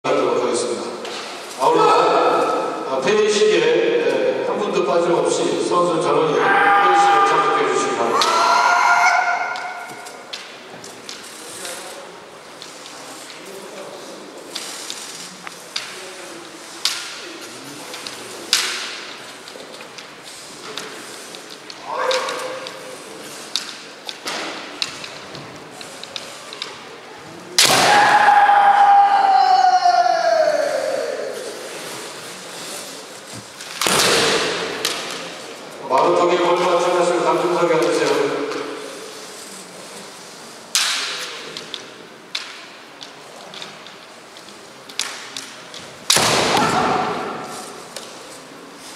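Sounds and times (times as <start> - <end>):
person shouting: 6.3 - 9.8, 28.2 - 31.4
person shouting long kiai: 21.8 - 22.6, 28.0 - 31.4.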